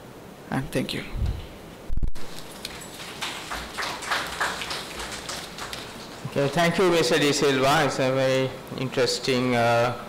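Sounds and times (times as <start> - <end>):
audience applauding: 2.4 - 7.9.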